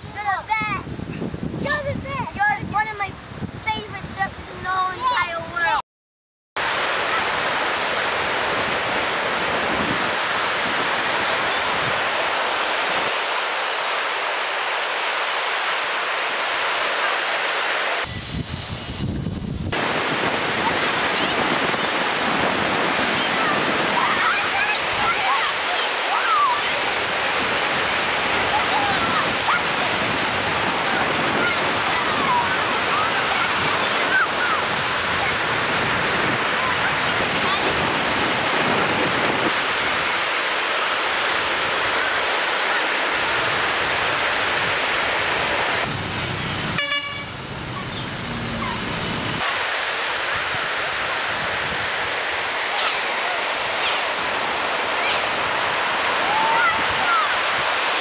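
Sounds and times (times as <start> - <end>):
ocean surf breaking: 6.6 - 58.0.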